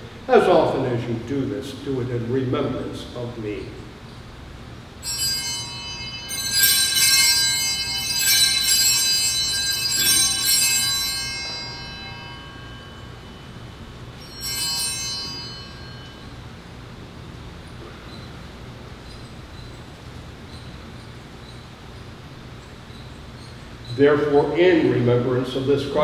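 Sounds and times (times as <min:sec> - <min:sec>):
altar bells ringing: 0:04.9 - 0:18.5.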